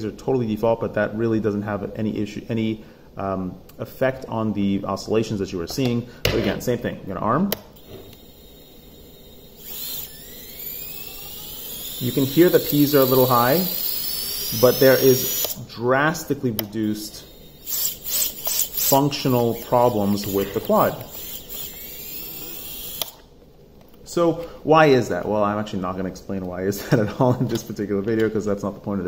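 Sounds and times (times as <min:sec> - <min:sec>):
electric motors whining: 0:07.8 - 0:15.7, 0:16.8 - 0:23.3.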